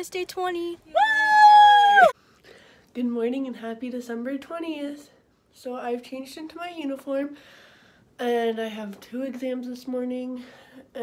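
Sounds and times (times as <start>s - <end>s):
girls shrieking: 1.0s - 2.2s.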